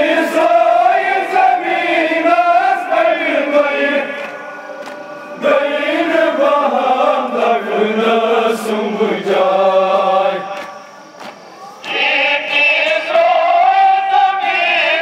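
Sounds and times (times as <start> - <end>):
men chanting a lament: 0.0 - 15.0
hands slapping chests: 4.2 - 5.1, 10.5 - 12.0.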